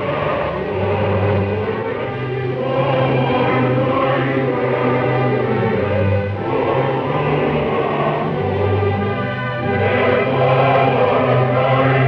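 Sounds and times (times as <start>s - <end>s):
opera chorus singing with orchestra: 0.0s - 12.0s.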